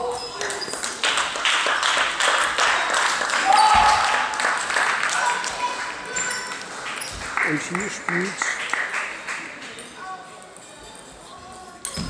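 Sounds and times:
murmur of distant voices: 4.3 - 12.0.

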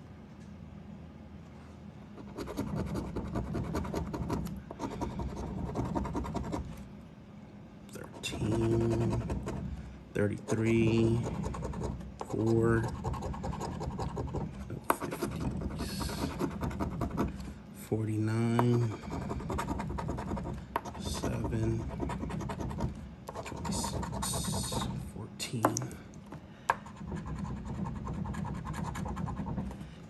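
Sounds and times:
coin scratching lottery ticket: 2.2 - 6.7, 8.0 - 9.6, 10.3 - 17.3, 18.6 - 25.0, 26.8 - 29.7.

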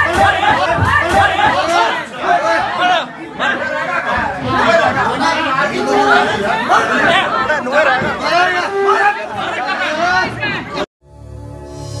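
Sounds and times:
men arguing loudly: 0.0 - 10.9.

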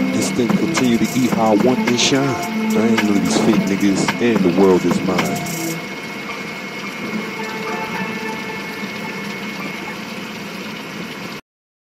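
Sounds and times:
steady hiss with high tone: 0.0 - 10.5.

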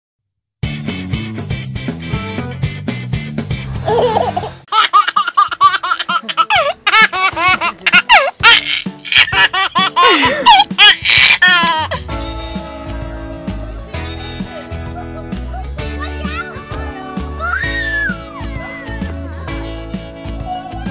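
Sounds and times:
baby laughing: 3.8 - 12.1.

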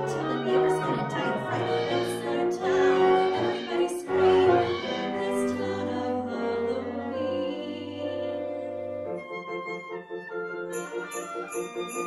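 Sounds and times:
chamber ensemble playing: 0.0 - 12.0
sleigh bells shaken: 10.7 - 12.0.

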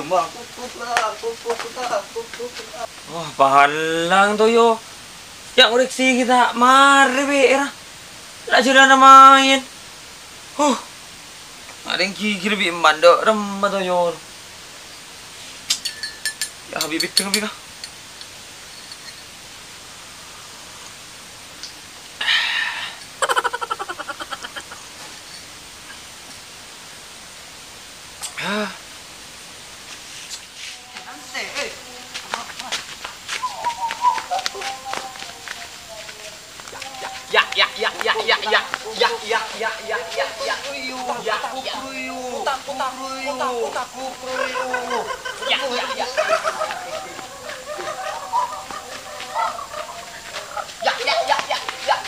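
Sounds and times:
chicken clucking: 44.2 - 52.0.

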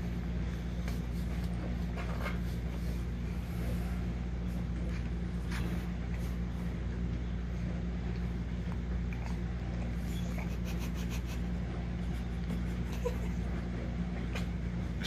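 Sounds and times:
appliance humming: 0.0 - 15.0.

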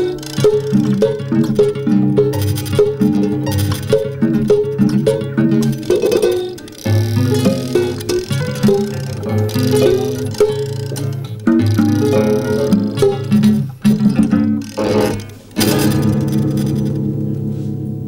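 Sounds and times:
prepared guitars plucking notes: 0.0 - 18.0.

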